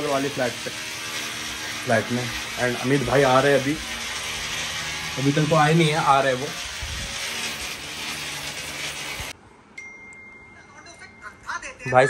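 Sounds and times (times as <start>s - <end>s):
construction work noise: 0.0s - 9.4s.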